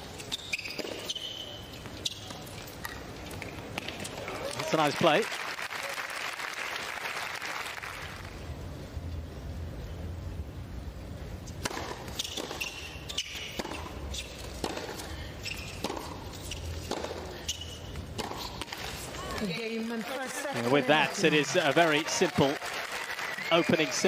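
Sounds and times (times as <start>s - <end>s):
sneaker squeaks: 0.0s - 3.0s, 11.8s - 19.6s
low arena hum: 0.0s - 24.0s
crowd applause: 4.5s - 8.3s, 19.8s - 24.0s
tennis racket strikes: 11.6s - 15.0s, 15.7s - 17.3s
tennis ball bouncing: 11.6s - 19.7s.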